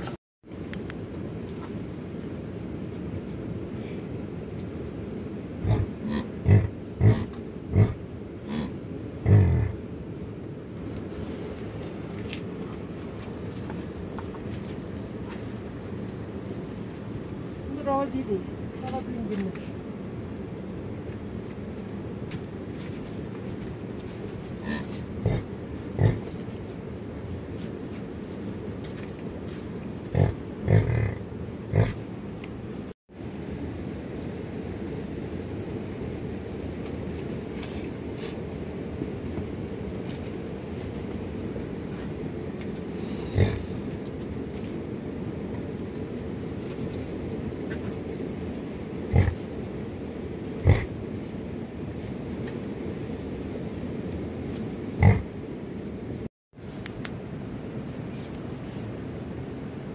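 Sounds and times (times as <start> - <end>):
young livestock grunting: 5.6 - 9.8, 24.6 - 26.3, 30.1 - 32.1, 43.2 - 43.8, 49.1 - 49.4, 50.6 - 51.0, 55.0 - 55.3.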